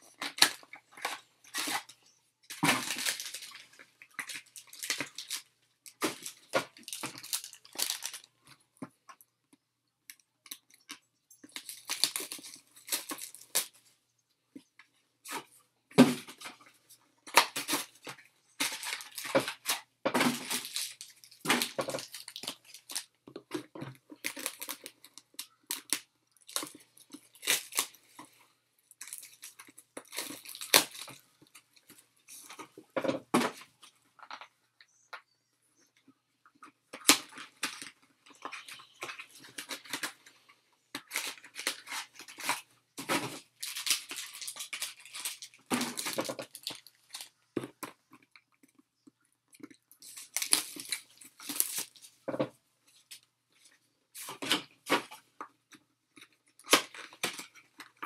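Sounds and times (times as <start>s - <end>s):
foil wrappers crinkling: 0.1s - 8.4s, 10.5s - 13.8s, 17.3s - 23.1s, 24.1s - 28.3s, 28.9s - 32.6s, 41.0s - 47.4s, 49.9s - 52.2s.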